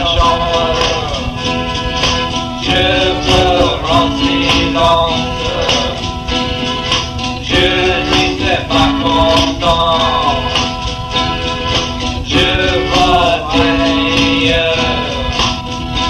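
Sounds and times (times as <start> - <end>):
electric band playing garage rock: 0.0 - 16.0
person singing: 0.0 - 16.0
steady percussion: 0.0 - 16.0.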